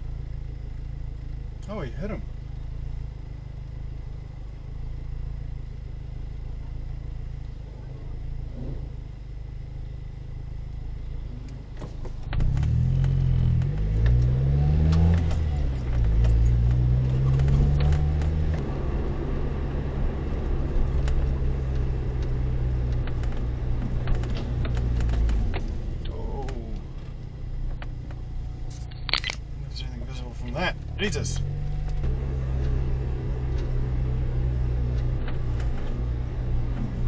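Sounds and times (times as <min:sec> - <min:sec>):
car engine idling and revving: 0:00.0 - 0:37.0.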